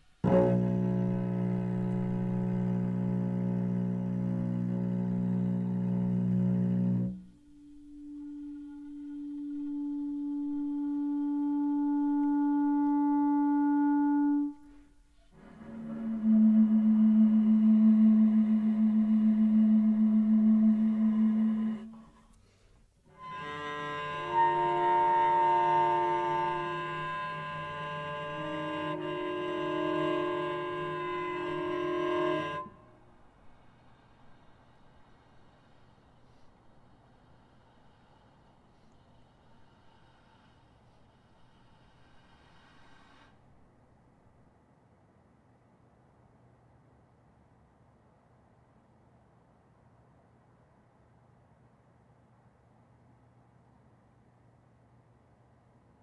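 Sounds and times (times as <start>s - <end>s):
cello held notes: 0.2s - 22.5s, 23.1s - 33.8s.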